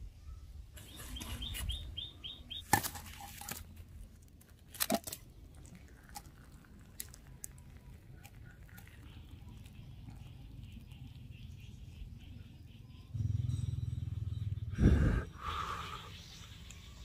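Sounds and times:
bird chirping: 0:00.2 - 0:02.7, 0:06.8 - 0:17.0.

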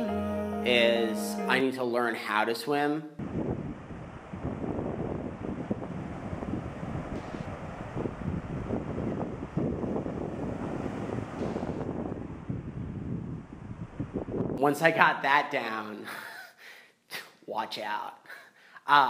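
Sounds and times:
wind buffeting microphone: 0:03.2 - 0:15.0.

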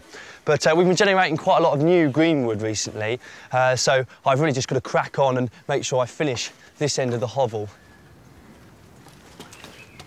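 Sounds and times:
rural outdoor ambience: 0:00.0 - 0:10.0
faint bird call: 0:07.7 - 0:08.8.

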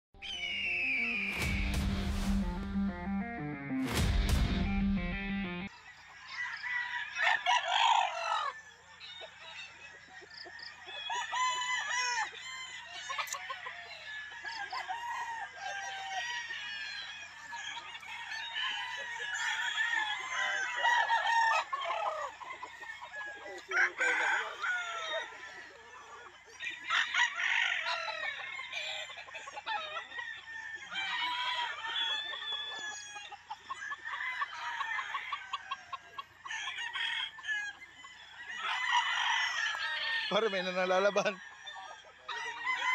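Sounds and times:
roosters crowing: 0:00.2 - 0:42.9.

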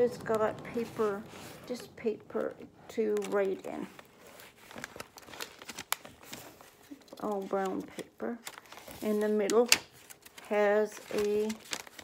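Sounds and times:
paper pages rustling: 0:00.0 - 0:12.0
paper snap: 0:09.4 - 0:12.0.

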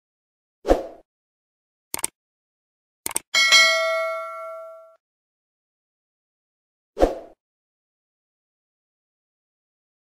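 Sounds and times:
mouse click: 0:03.1 - 0:03.3
notification bell ding: 0:03.4 - 0:05.0.

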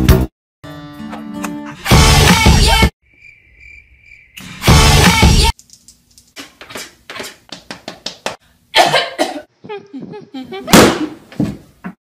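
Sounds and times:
loud music: 0:01.6 - 0:02.9, 0:04.6 - 0:05.5
cricket chirping: 0:03.0 - 0:04.6.

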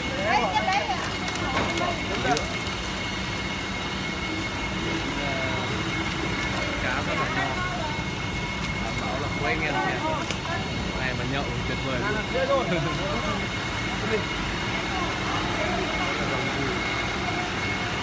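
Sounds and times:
people talking: 0:00.0 - 0:02.6, 0:04.8 - 0:08.1, 0:08.8 - 0:17.9
mechanical hum: 0:00.0 - 0:18.0.

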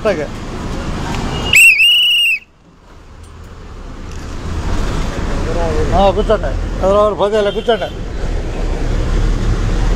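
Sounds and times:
bus engine rumble: 0:00.0 - 0:09.9
road noise: 0:00.0 - 0:09.9
shrill whistle blast: 0:01.4 - 0:02.5.

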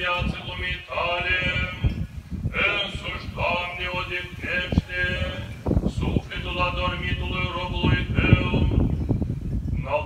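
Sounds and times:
men chanting in unison: 0:00.0 - 0:01.9, 0:02.5 - 0:08.8.

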